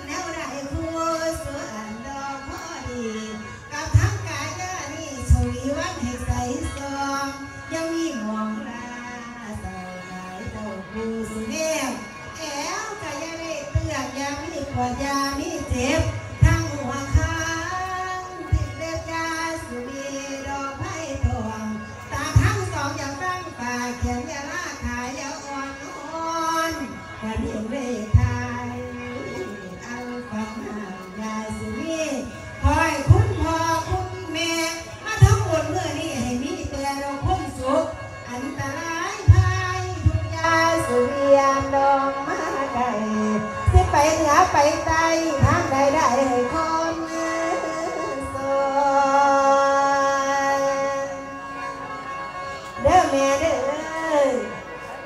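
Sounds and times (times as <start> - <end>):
woman singing into microphone: 0.0 - 51.7, 52.7 - 55.0
mouth organ drone: 26.9 - 34.3.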